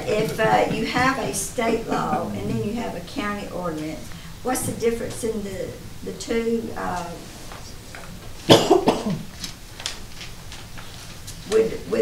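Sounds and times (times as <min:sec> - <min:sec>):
person coughing: 0:08.5 - 0:09.3.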